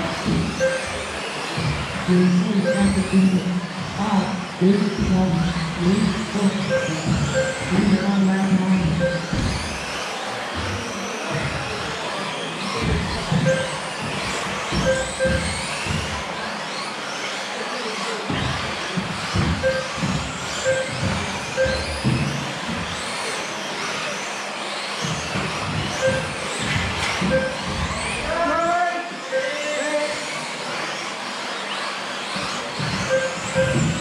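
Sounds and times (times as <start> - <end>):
rc car motors whining: 0.0 - 34.0
short electronic beeps: 0.6 - 1.2, 2.4 - 3.4, 6.0 - 8.2, 8.8 - 9.4, 13.4 - 13.8, 14.7 - 15.6, 19.6 - 22.1, 26.0 - 26.4, 27.2 - 27.7, 29.3 - 29.8, 33.1 - 34.0.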